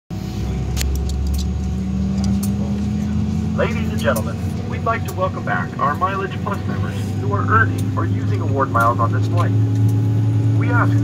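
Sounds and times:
airliner cabin hum and whine: 0.2 - 11.0.

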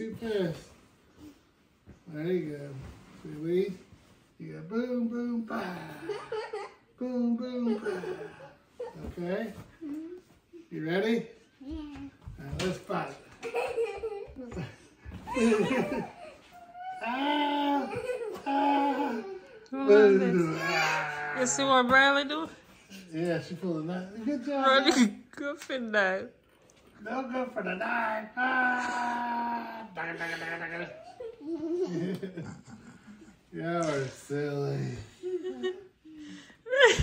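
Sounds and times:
man laughing heartily: 13.6 - 16.2, 31.8 - 33.4
people talking: 33.6 - 35.0.

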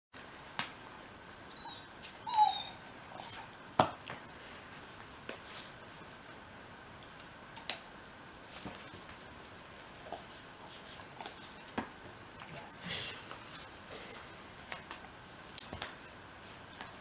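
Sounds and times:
dog whining: 1.5 - 3.5.

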